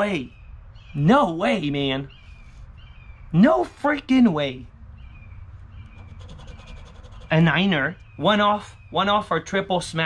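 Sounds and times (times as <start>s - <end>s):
low background rumble: 0.0s - 10.0s
coin scraping lottery ticket: 6.0s - 7.3s.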